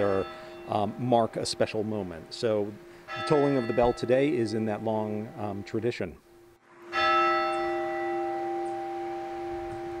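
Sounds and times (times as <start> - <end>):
church bell tolling: 0.0 - 10.0.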